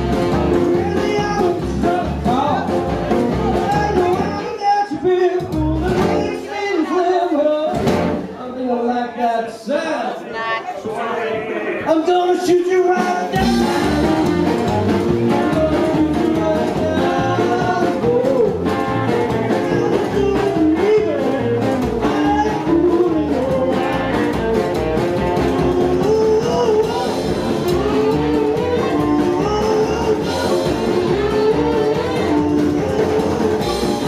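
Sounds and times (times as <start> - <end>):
upright double bass: 0.0 - 6.5, 7.1 - 8.4, 13.3 - 34.0
electric guitar: 0.0 - 6.7, 13.2 - 34.0
drum kit: 0.0 - 8.4, 12.3 - 34.0
man singing: 0.0 - 9.9, 11.8 - 34.0.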